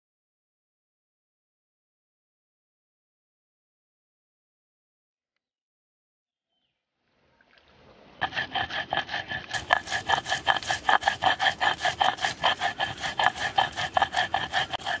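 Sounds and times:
stone roller grinding on stone slab: 0:09.5 - 0:15.0.

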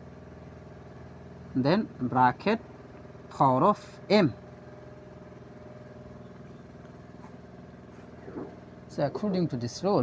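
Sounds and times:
motor humming: 0:00.0 - 0:10.0.

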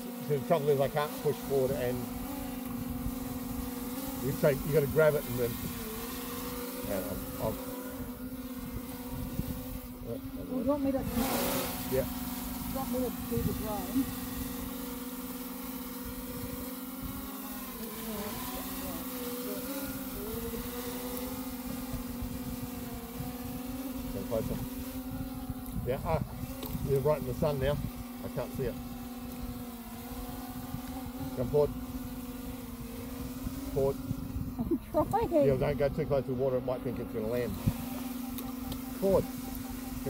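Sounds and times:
drone propellers humming: 0:00.0 - 0:40.0
wind rumble on microphone: 0:01.7 - 0:06.0, 0:06.8 - 0:14.8, 0:16.1 - 0:17.3, 0:20.0 - 0:36.2.

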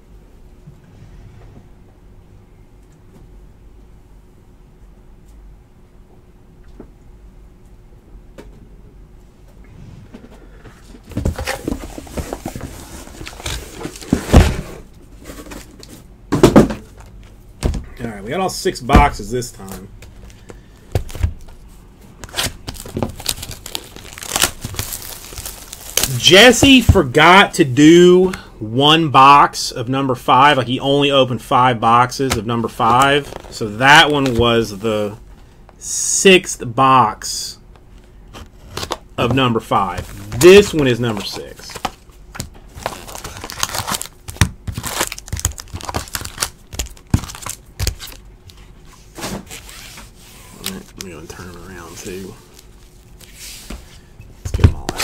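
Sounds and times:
foil packs crinkling: 0:11.2 - 0:14.4, 0:22.2 - 0:27.0, 0:39.7 - 0:42.0, 0:42.7 - 0:48.3
plastic shrink wrap tearing: 0:22.2 - 0:26.3, 0:42.7 - 0:48.2.

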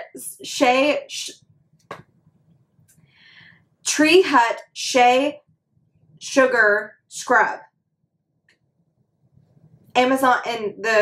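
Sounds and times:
faint breath through nose: 0:03.0 - 0:03.7.

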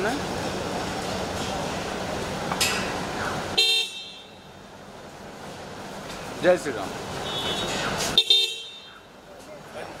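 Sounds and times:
street background noise: 0:00.0 - 0:10.0
vehicle horn honk: 0:03.6 - 0:04.4, 0:07.2 - 0:09.0.

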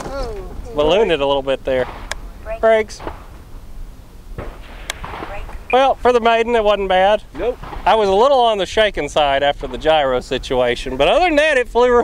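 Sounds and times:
sharp click: 0:04.8 - 0:05.7.

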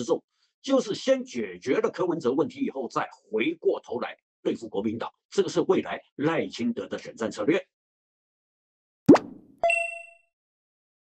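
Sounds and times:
rising pop: 0:09.1 - 0:09.6
bright chime ding: 0:09.6 - 0:10.2.

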